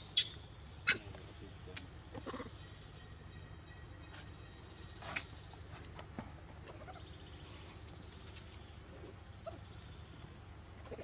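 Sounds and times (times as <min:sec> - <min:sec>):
young monkeys squeaking: 0:00.0 - 0:01.1, 0:02.1 - 0:02.6.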